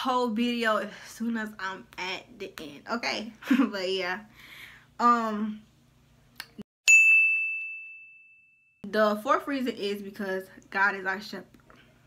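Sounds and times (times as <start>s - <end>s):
bright bell ding: 6.9s - 8.9s.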